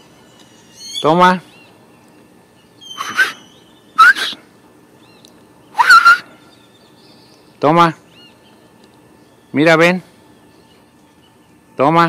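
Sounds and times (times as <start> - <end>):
small birds chirping: 0.0 - 12.0
kissing squeaks calling cat: 2.8 - 4.4.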